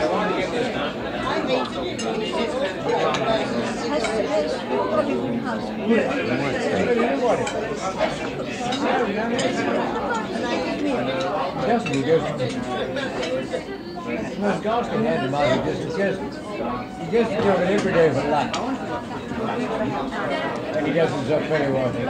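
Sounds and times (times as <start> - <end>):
babble of overlapping conversation: 0.0 - 22.0
dishes and cutlery clinking: 8.6 - 10.2, 11.1 - 13.5.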